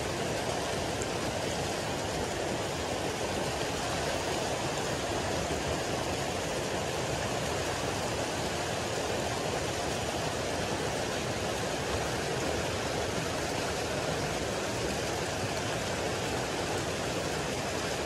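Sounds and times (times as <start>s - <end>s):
water gushing into pond: 0.0s - 18.0s.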